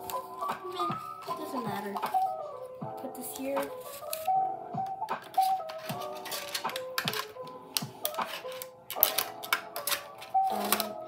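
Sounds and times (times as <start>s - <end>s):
plastic sticker sheet crackling: 0.0s - 2.4s, 3.1s - 11.0s
background music: 0.0s - 11.0s.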